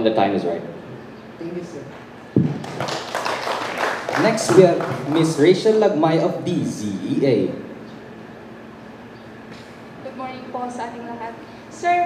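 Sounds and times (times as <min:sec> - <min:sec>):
microphone thump on table: 0:02.4 - 0:02.8
light clapping: 0:02.6 - 0:05.4.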